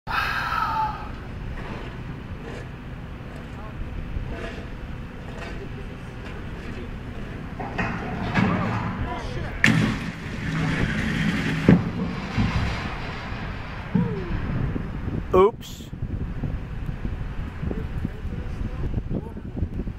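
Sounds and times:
diesel engine under load: 0.3 - 17.6
sharp knocks: 9.6 - 13.1.

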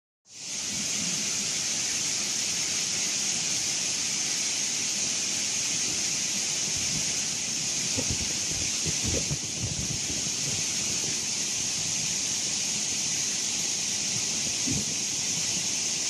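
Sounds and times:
waterfall roaring: 0.3 - 16.0.

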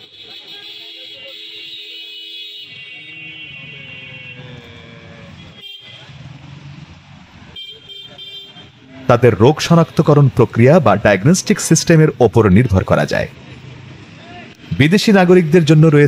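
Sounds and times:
car horns: 0.0 - 6.4, 7.5 - 9.1
traffic rumble: 0.0 - 16.0.

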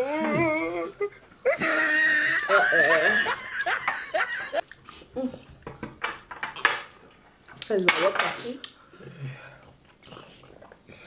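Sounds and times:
person laughing: 1.4 - 4.6.

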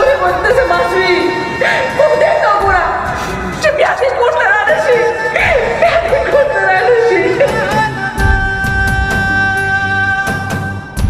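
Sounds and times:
woman crying and wailing: 0.0 - 10.5
background music: 0.0 - 11.0.

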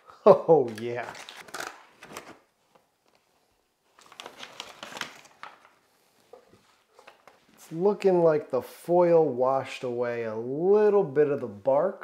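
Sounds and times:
foil and paper crinkling: 3.9 - 5.8.

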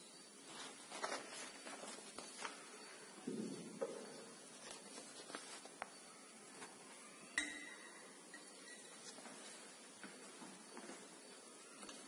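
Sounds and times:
glass clink with short ring: 7.4 - 8.9.

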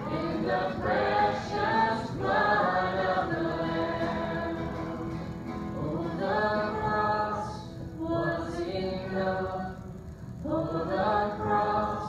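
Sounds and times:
acoustic guitar: 0.0 - 12.0
congregation singing a hymn: 0.0 - 12.0
woman singing lead: 5.8 - 12.0.

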